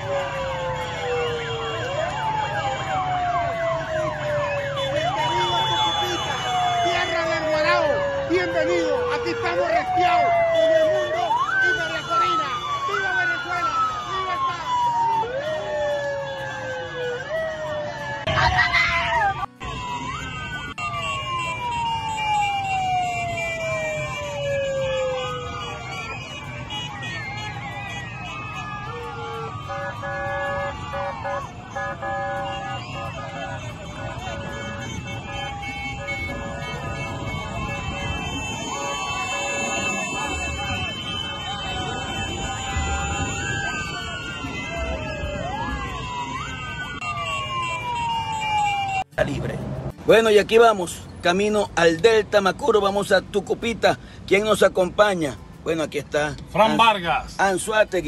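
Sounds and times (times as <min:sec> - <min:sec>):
crowd shouting: 0:00.0 - 0:20.8, 0:24.7 - 0:47.8
sirens wailing: 0:00.0 - 0:58.0
steady horn tones: 0:23.1 - 0:48.1.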